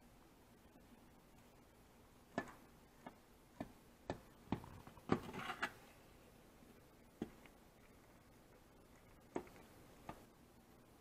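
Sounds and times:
knife scraping pan: 5.1s - 5.8s.

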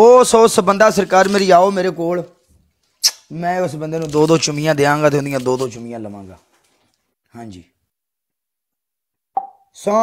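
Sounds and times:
person speaking: 0.0s - 6.6s.

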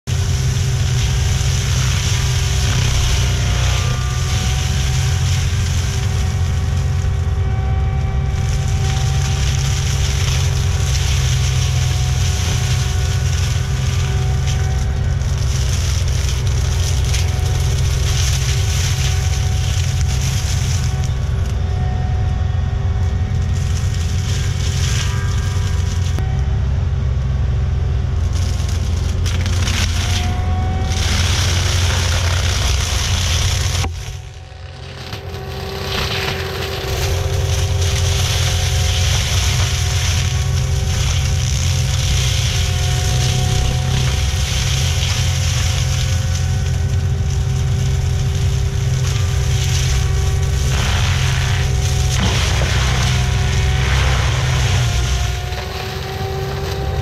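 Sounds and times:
mulcher shredding shrubs: 0.0s - 26.5s, 27.2s - 57.0s
track loader engine drone: 0.0s - 57.0s.

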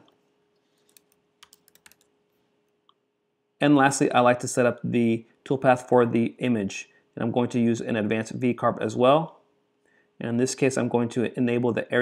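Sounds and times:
keyboard keys clicking: 0.9s - 2.0s.

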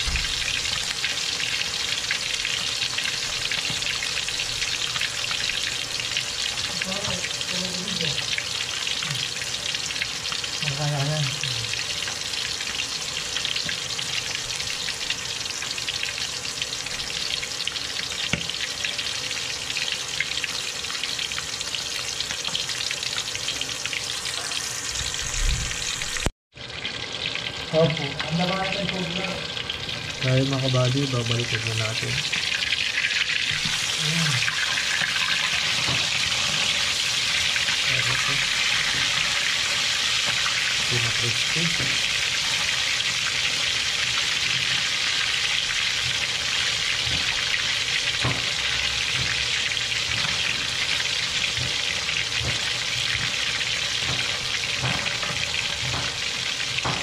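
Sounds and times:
fish frying in hot oil: 0.0s - 57.0s.

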